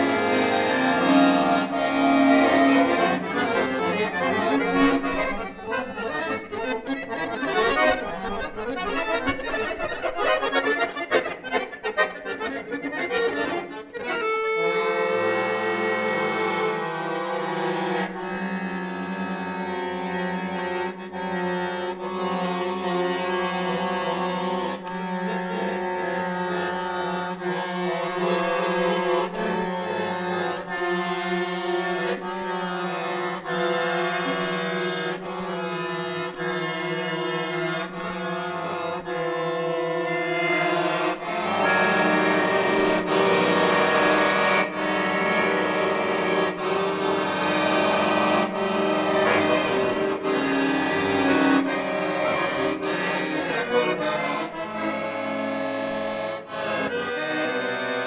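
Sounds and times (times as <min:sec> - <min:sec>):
piano accordion playing chords: 0:00.0 - 0:58.0.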